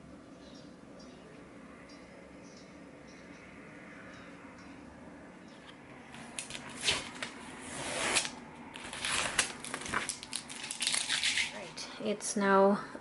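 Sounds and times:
paper crackling and rustling: 0:06.1 - 0:11.8.

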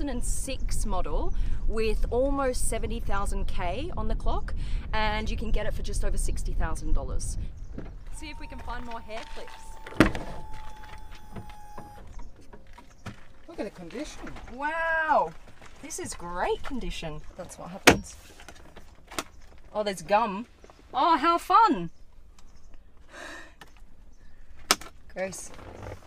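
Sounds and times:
steady high tone: 0:08.1 - 0:12.1.

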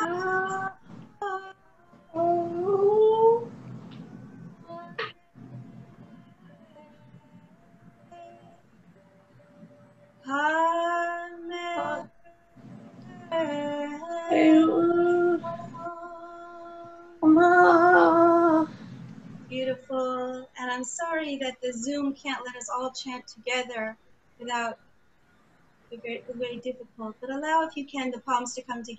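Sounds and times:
woman chanting in held notes: 0:10.3 - 0:12.1, 0:13.1 - 0:18.9.

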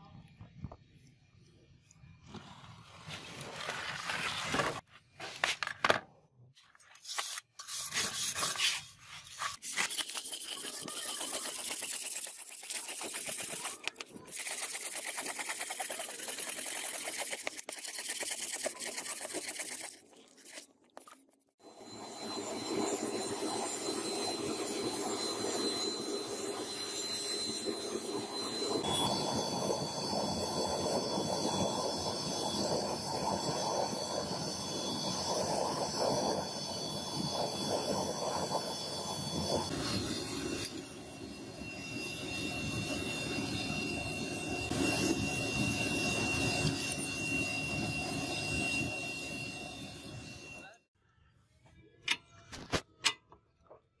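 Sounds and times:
thin high whine: 0:06.9 - 0:20.6, 0:21.6 - 0:50.9.

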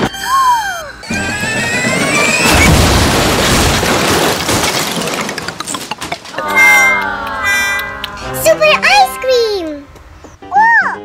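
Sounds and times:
falling whistle: 0:00.0 - 0:02.8
tone rising in steps: 0:00.0 - 0:03.3, 0:05.4 - 0:09.2
loud crash-like rush of noise: 0:01.4 - 0:05.2
music: 0:06.3 - 0:11.0.

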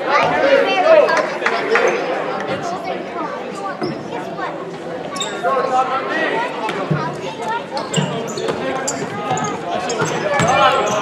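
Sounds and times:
voices calling out in a gym: 0:00.0 - 0:11.0
basketball bouncing on wooden court: 0:07.9 - 0:10.7.

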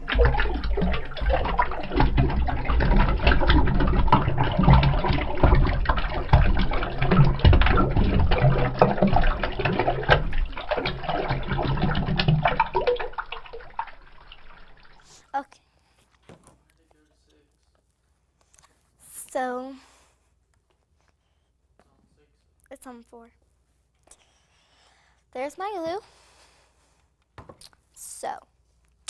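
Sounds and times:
glue glugging into a bowl: 0:00.0 - 0:15.3.

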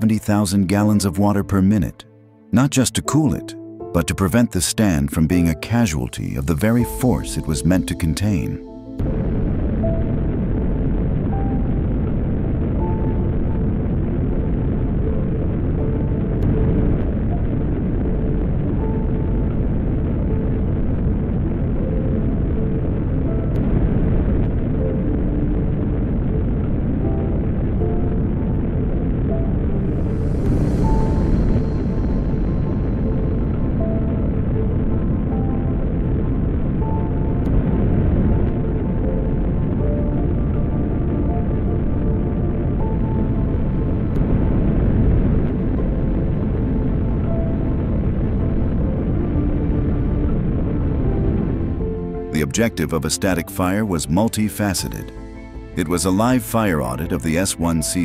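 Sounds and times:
music: 0:00.0 - 0:58.0
rocket engine roar: 0:15.8 - 0:58.0.

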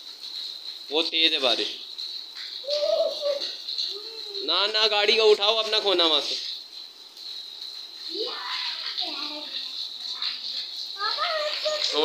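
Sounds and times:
rain hissing: 0:00.0 - 0:12.0
pigeon cooing: 0:02.6 - 0:04.4.

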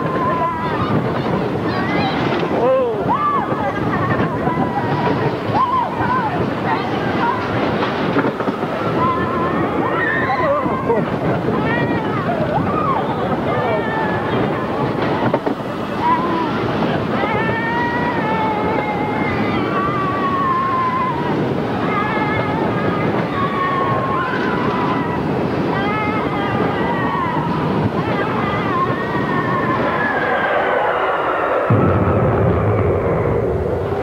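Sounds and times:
riders yelling and whooping: 0:00.0 - 0:07.8, 0:08.4 - 0:31.8
roller coaster rumbling on track: 0:00.0 - 0:34.0.

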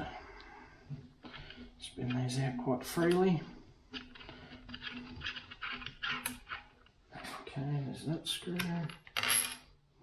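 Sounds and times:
man talking: 0:01.8 - 0:03.6, 0:07.2 - 0:09.0
screw clicking and scraping: 0:03.9 - 0:07.0.

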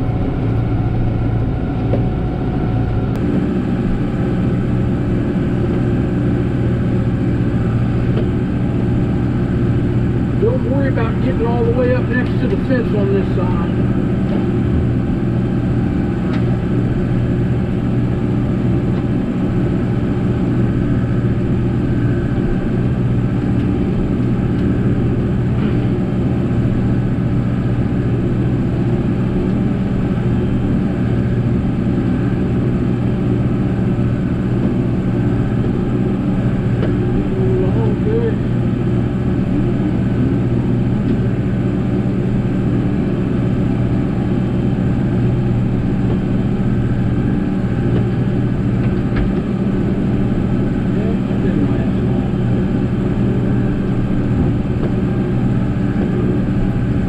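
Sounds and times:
tractor diesel engine running: 0:00.0 - 0:57.0.

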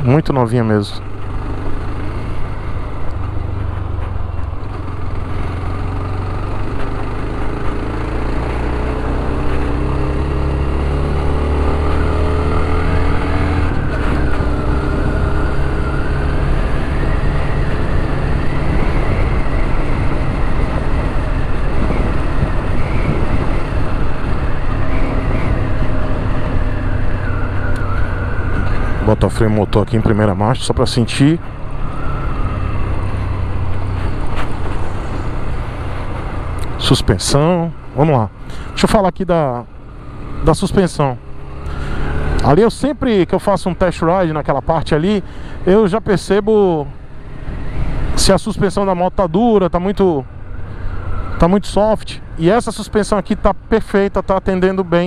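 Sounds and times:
motorcycle engine accelerating: 0:00.0 - 0:52.4.

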